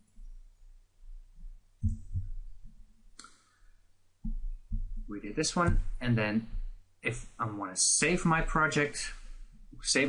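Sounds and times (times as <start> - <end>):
soft low thumps: 1.1 - 2.9, 4.2 - 6.8.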